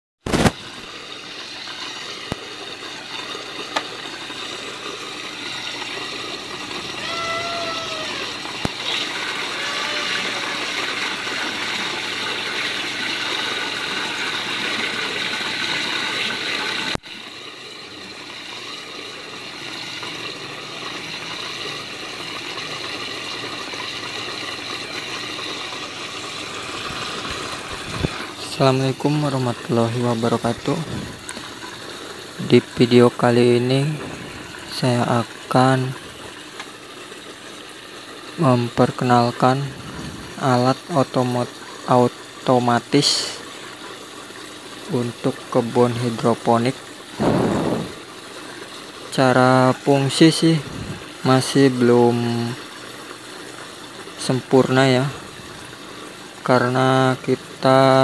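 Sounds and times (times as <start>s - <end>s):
water running: 0.3s - 58.0s.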